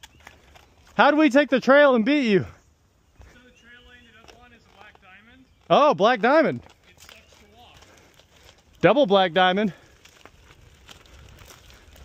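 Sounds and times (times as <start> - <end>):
footsteps crunching on leaves: 6.6 - 12.0.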